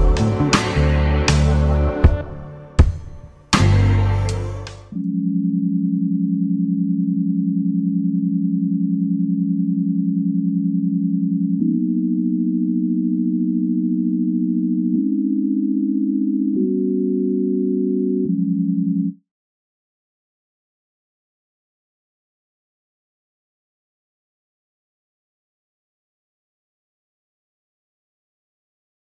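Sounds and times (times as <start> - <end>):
sine-wave synth pad chord: 3.7 - 19.2.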